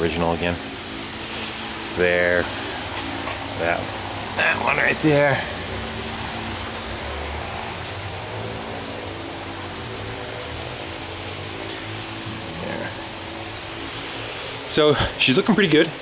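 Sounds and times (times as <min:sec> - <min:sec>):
low hum: 0:00.0 - 0:15.3
steady background hiss: 0:00.0 - 0:16.0.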